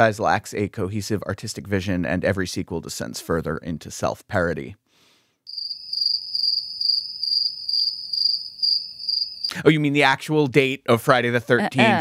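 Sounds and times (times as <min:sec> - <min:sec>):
crickets chirping: 0:05.5 - 0:09.5.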